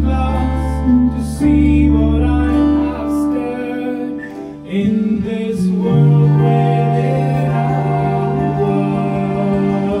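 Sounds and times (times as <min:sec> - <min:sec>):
acoustic guitar: 0:00.0 - 0:10.0
rock band playing live: 0:05.8 - 0:10.0.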